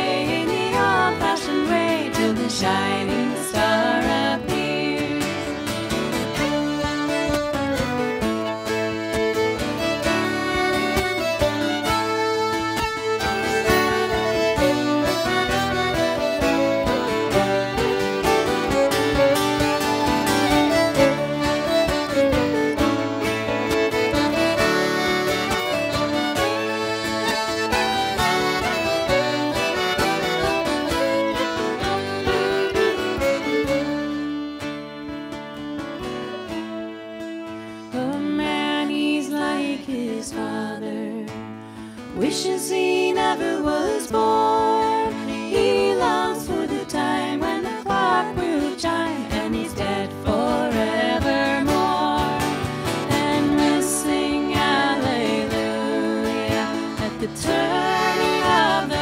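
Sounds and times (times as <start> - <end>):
acoustic guitars: 0.0 - 59.0
fiddles playing melody: 0.0 - 59.0.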